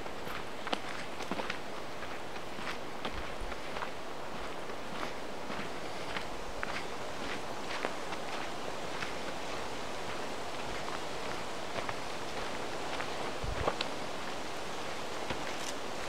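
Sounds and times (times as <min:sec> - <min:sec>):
crackles underfoot: 0:00.0 - 0:16.0
footsteps in undergrowth: 0:00.0 - 0:16.0
leaves rustling: 0:00.0 - 0:16.0.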